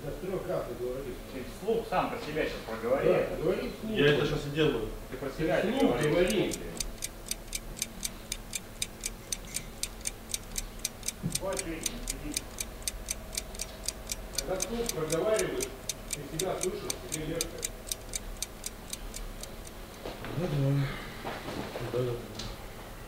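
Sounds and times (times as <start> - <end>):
fast light ticking: 5.7 - 20.0.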